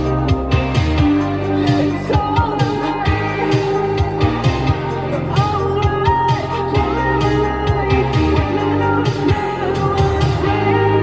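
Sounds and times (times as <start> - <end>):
high vocal ad-libs: 0.0 - 11.0
pop backing track: 0.0 - 11.0.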